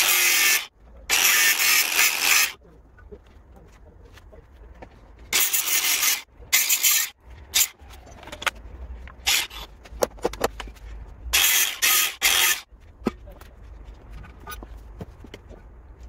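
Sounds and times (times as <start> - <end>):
angle grinder cutting steel: 0.0 - 2.6, 5.3 - 7.8, 9.2 - 9.7, 11.3 - 12.7.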